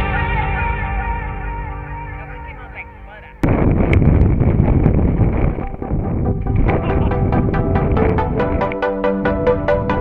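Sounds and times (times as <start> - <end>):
wind buffeting microphone: 3.4 - 10.0.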